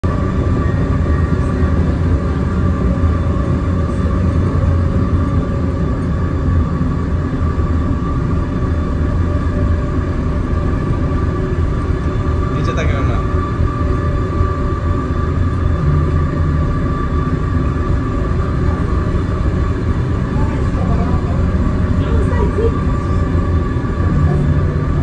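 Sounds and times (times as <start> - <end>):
loud low rumble: 0.0 - 25.0.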